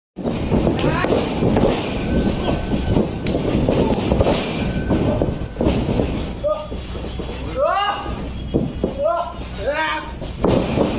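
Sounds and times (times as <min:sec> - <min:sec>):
people shouting: 0:06.4 - 0:06.8, 0:07.4 - 0:10.2
bodies slamming on ring mat: 0:10.2 - 0:10.9.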